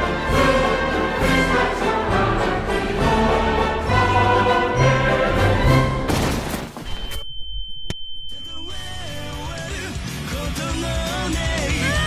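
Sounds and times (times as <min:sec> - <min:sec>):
music: 0:00.0 - 0:06.1, 0:08.5 - 0:12.0
high-pitched electronic tone: 0:06.9 - 0:09.8.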